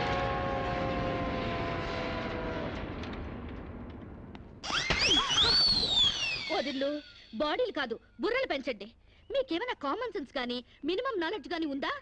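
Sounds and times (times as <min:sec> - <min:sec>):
high gliding comedy sound: 0:04.6 - 0:07.6.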